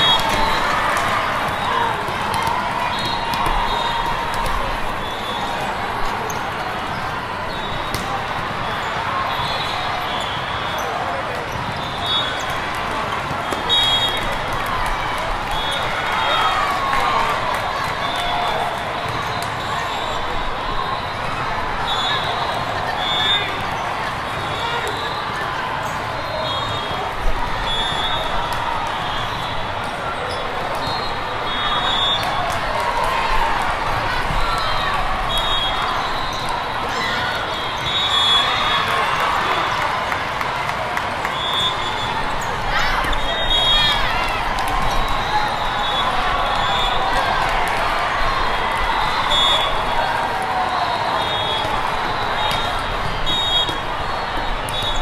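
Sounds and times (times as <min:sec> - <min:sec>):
volleyball hits: 0:00.0 - 0:06.1, 0:07.8 - 0:08.4
many voices echoing in a hall: 0:00.0 - 0:55.0.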